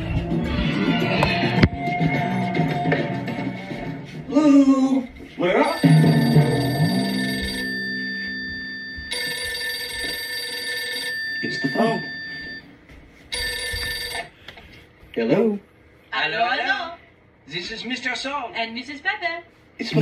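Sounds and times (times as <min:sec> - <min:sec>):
telephone ringing: 0:05.6 - 0:12.7, 0:13.3 - 0:14.4.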